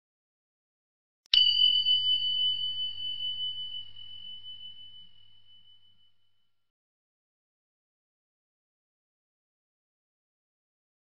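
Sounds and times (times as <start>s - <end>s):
high bell-like ding: 1.3s - 6.5s.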